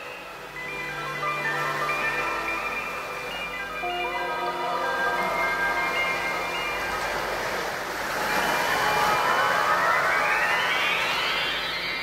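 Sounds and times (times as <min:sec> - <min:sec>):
held synth notes: 0:00.0 - 0:12.0
whoosh of noise: 0:07.9 - 0:12.0
tone gliding upward: 0:08.1 - 0:12.0.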